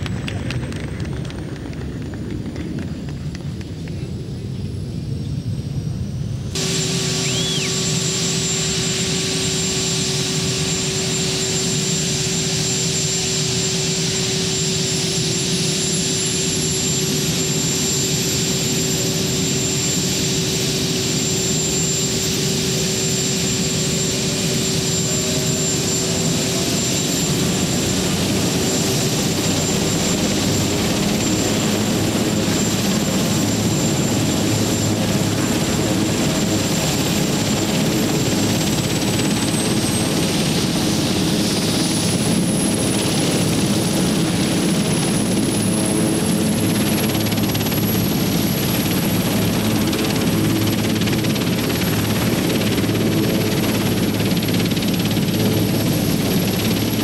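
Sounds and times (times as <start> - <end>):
helicopter rotor noise: 0.0 - 57.0
helicopter turbine whine: 0.0 - 57.0.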